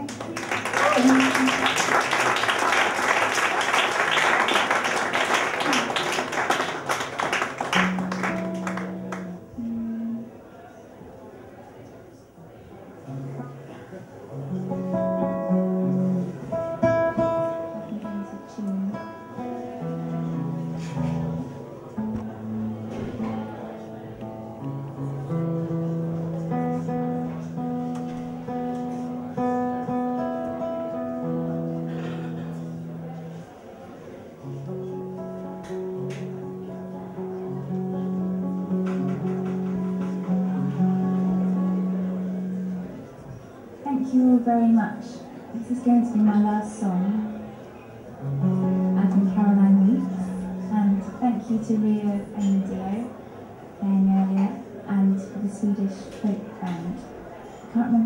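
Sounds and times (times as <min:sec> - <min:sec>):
audience applause: 0:00.0 - 0:09.4
guitar strings plucked while tuning: 0:07.7 - 0:10.2, 0:13.1 - 0:33.5, 0:34.4 - 0:43.1.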